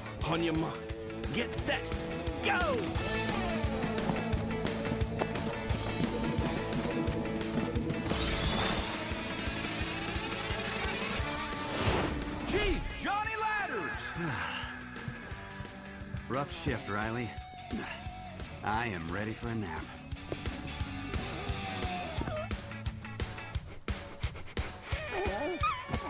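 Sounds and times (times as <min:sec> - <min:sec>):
cartoon background music: 0:00.1 - 0:26.0.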